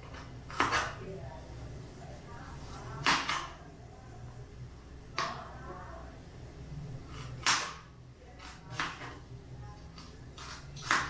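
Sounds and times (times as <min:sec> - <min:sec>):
knife chopping on plastic board: 0:00.0 - 0:01.0, 0:03.0 - 0:03.5, 0:07.2 - 0:09.2, 0:10.0 - 0:11.0.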